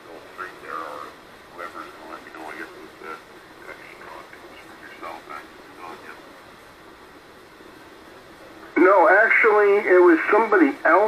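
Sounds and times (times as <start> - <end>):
faint broken radio voices: 0.0 - 7.0, 7.7 - 11.0
radio static hiss: 0.0 - 11.0.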